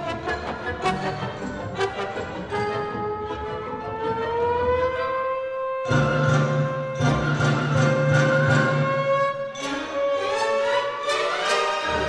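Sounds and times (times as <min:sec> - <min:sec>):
trombone slide glissando: 0:00.1 - 0:12.0.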